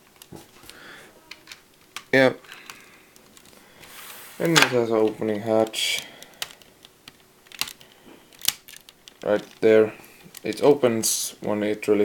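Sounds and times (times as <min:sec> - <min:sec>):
small plastic clicks: 0:05.6 - 0:09.6.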